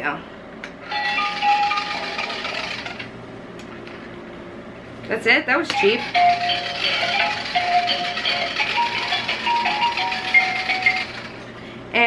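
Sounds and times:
buzzing rattle of shaking toy: 0:00.8 - 0:03.1, 0:05.6 - 0:11.5
electronic toy tune: 0:00.9 - 0:02.4, 0:05.7 - 0:11.3.

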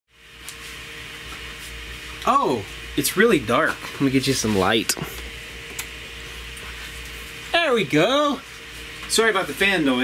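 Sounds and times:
fan running with hum: 0:00.1 - 0:10.0.

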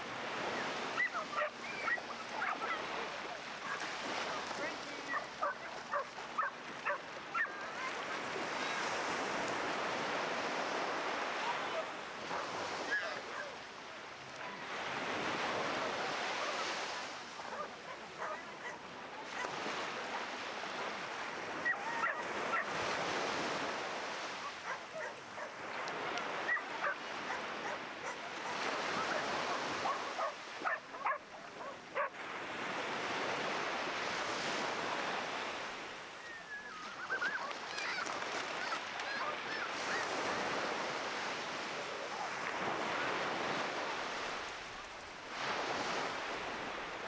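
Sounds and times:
surf breaking on sand: 0:00.0 - 0:35.8
dogs barking and yelping: 0:00.6 - 0:03.0, 0:05.1 - 0:08.0, 0:11.8 - 0:13.6, 0:17.4 - 0:19.5, 0:21.6 - 0:22.7, 0:24.4 - 0:25.6, 0:26.3 - 0:32.1, 0:36.6 - 0:40.1.

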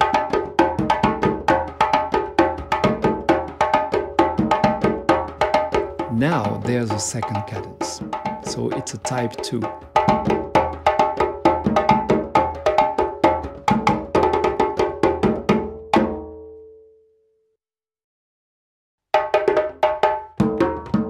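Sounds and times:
djembes played by hand: 0:00.0 - 0:16.4, 0:19.2 - 0:21.0.

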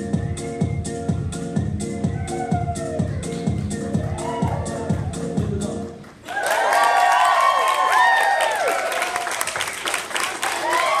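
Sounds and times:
high voices whooping: 0:02.0 - 0:05.7, 0:06.3 - 0:09.4, 0:10.5 - 0:11.0
audience applauding: 0:03.1 - 0:11.0.

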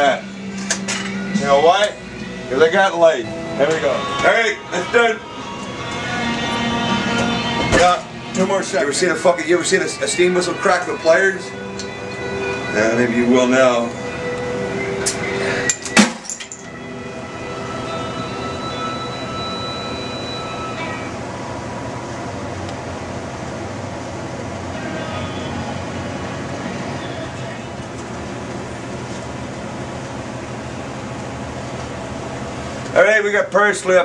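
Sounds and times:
steady background noise: 0:00.0 - 0:34.0.

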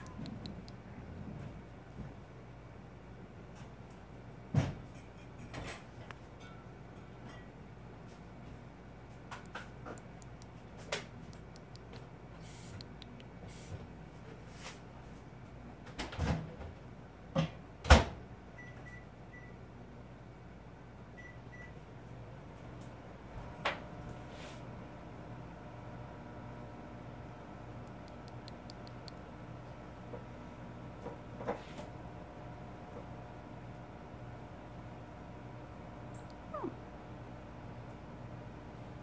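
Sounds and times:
steady low hum: 0:00.0 - 0:15.8, 0:19.6 - 0:39.0.

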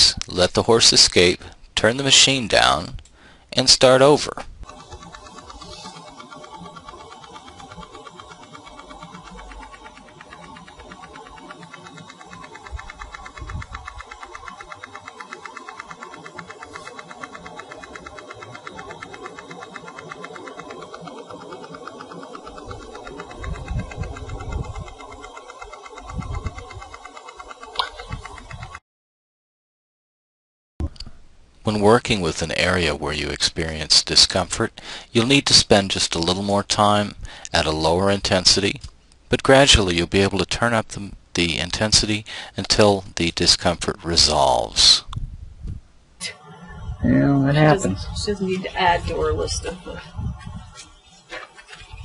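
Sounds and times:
rapid ticking buzz: 0:00.5 - 0:28.8, 0:31.7 - 0:45.2, 0:47.6 - 0:52.0.

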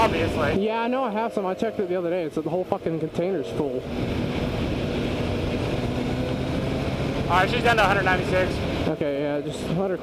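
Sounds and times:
motorcycle engine running at low revs: 0:01.6 - 0:10.0
wind noise on microphone: 0:03.5 - 0:07.3.

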